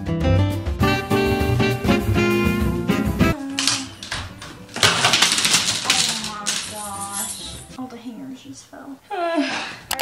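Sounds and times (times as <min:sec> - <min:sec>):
clothes hangers clattering: 0:03.4 - 0:07.8.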